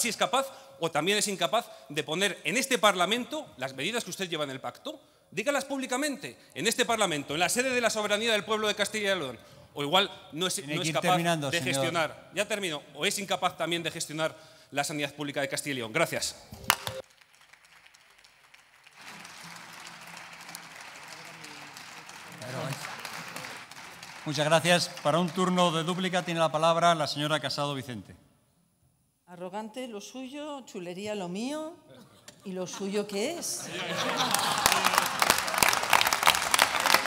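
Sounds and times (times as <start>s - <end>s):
voice: 9.8s - 13.9s
group applause: 16.7s - 26.8s, 33.7s - 37.0s.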